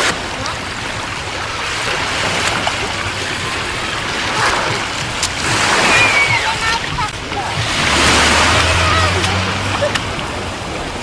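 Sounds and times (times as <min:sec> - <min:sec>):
small waves washing on beach: 0:00.0 - 0:11.0.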